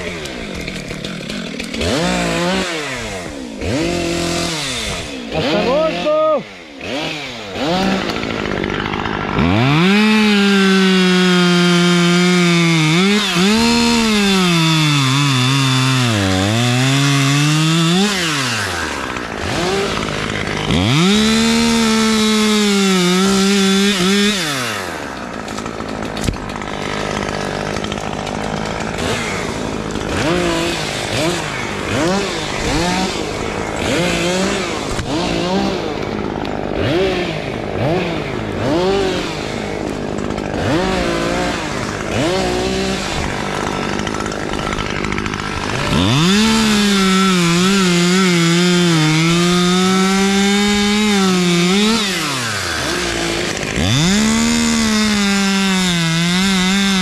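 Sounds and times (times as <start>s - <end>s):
chainsaw cutting wood: 0.0s - 57.0s
chainsaw idling with throttle blips: 0.0s - 57.0s.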